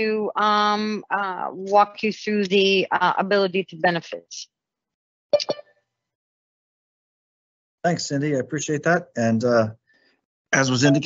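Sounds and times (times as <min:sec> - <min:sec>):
electronic alert chime: 0:10.7 - 0:11.0.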